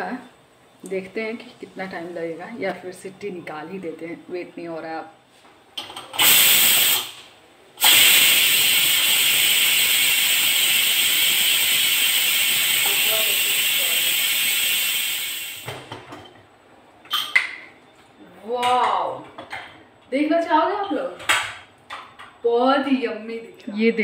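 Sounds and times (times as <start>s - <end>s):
pressure cooker steam hissing: 6.2s - 7.2s, 7.8s - 15.8s.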